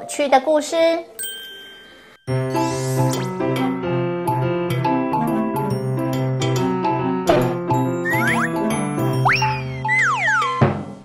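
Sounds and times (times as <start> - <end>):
cartoon music held chord: 2.3 - 6.7, 7.4 - 10.6
springy boing sliding effects: 9.2 - 10.7.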